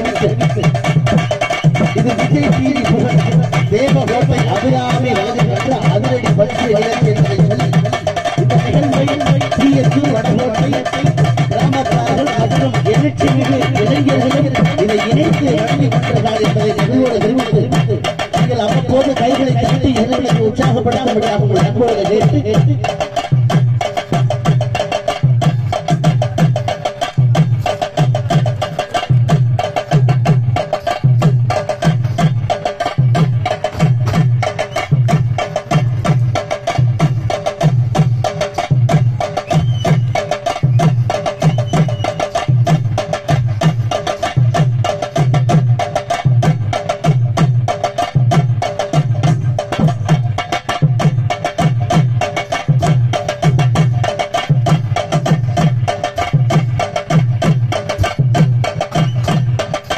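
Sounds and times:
barrel drum beaten with stick: 0:00.0 - 0:59.9
hand drums: 0:00.0 - 0:59.9.

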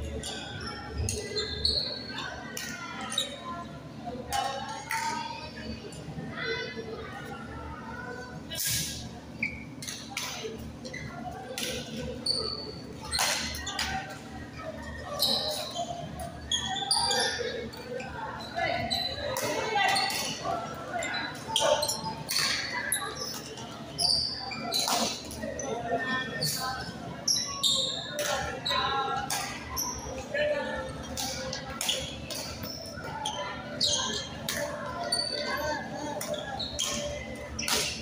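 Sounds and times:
people talking: 0:00.0 - 0:38.0
shoes squeaking on court floor: 0:00.1 - 0:03.4, 0:08.6 - 0:38.0.

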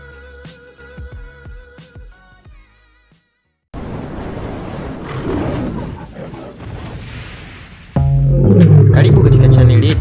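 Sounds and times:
music: 0:00.0 - 0:03.7, 0:08.0 - 0:10.0
lion roaring: 0:05.0 - 0:06.8, 0:08.3 - 0:09.8.

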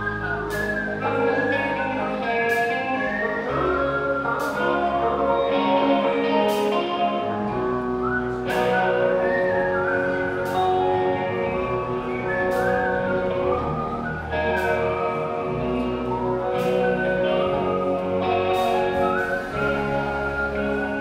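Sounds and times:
bass: 0:00.0 - 0:21.0
bending lead guitar: 0:00.0 - 0:21.0
keyboard chords: 0:00.0 - 0:21.0.

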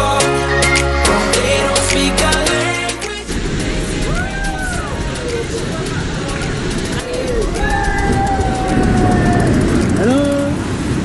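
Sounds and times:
small waterfall rushing: 0:03.0 - 0:10.7.

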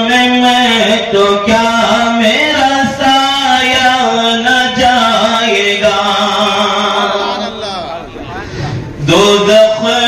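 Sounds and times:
hall echo: 0:00.0 - 0:10.0
man chanting through pa system: 0:00.0 - 0:10.0.

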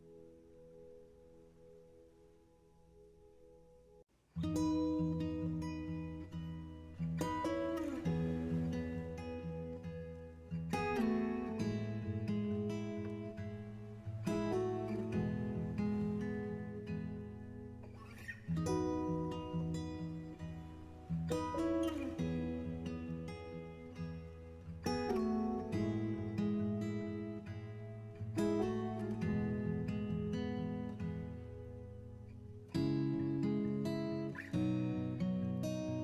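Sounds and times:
acoustic guitar music: 0:00.0 - 0:36.0.

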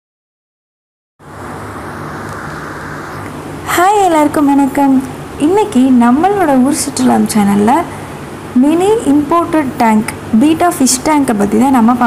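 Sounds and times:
low hum: 0:01.2 - 0:06.0.

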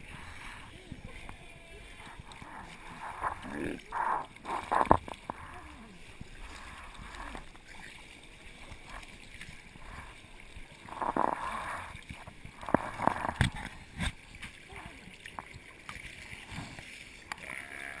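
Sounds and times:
water sloshing and splashing: 0:00.0 - 0:18.0.

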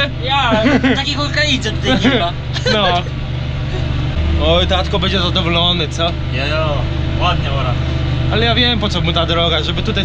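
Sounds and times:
tractor engine droning: 0:00.0 - 0:10.0
man speaking: 0:01.9 - 0:03.1.

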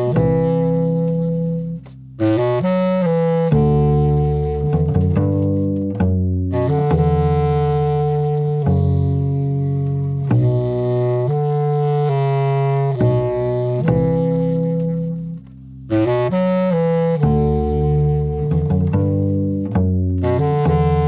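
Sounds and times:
bass clarinet low notes: 0:00.0 - 0:21.0
double bass: 0:00.0 - 0:21.0.

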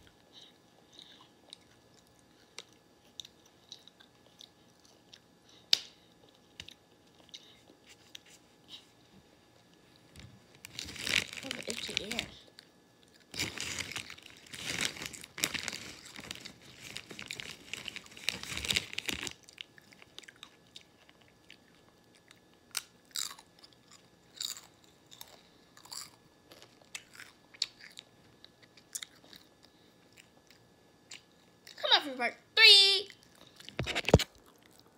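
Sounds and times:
chewing crunchy chips: 0:00.0 - 0:08.4, 0:09.6 - 0:31.8, 0:33.1 - 0:34.9.

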